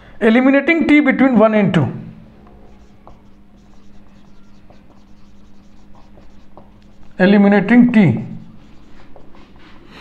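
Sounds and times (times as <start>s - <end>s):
steady low hum: 0.0s - 10.0s
marker writing on whiteboard: 2.4s - 10.0s.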